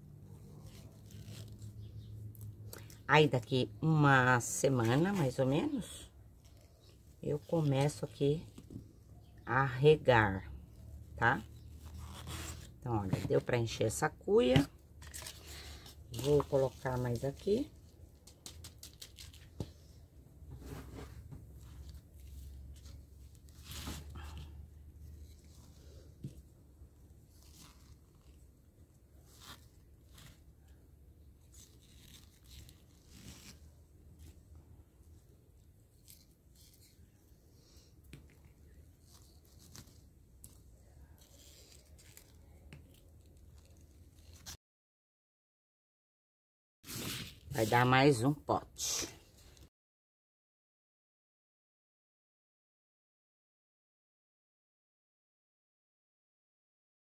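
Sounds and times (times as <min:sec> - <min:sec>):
hands rustling in potting soil: 0:00.1 - 0:44.6, 0:46.9 - 0:49.7.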